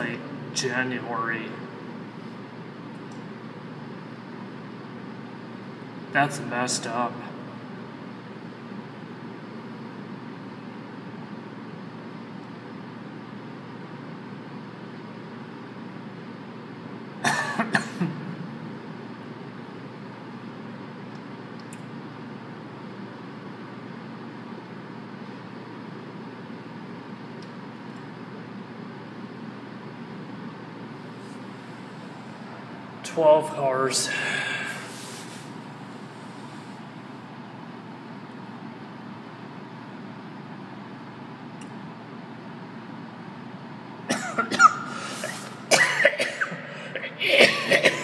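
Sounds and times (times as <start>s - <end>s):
person coughing: 17.2s - 18.4s, 44.1s - 48.0s.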